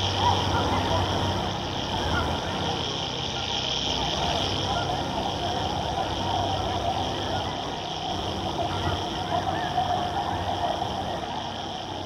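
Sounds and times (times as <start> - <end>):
dense wash of noise: 0.0 - 12.0
faint warbling fragments: 0.0 - 12.0
low hum: 0.0 - 12.0.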